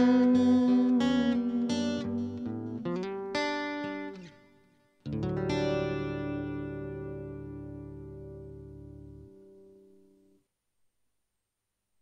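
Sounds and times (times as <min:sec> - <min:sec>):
guitar chord ringing: 0:00.0 - 0:04.4, 0:05.1 - 0:10.2.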